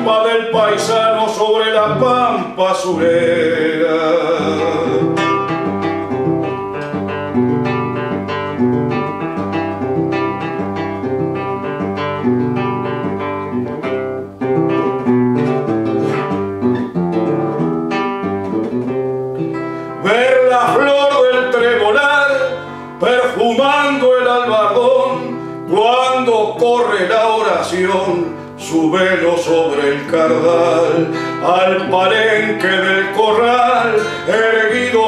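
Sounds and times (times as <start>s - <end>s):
man singing: 0.0s - 5.8s, 19.8s - 35.0s
classical guitar playing: 0.0s - 35.0s.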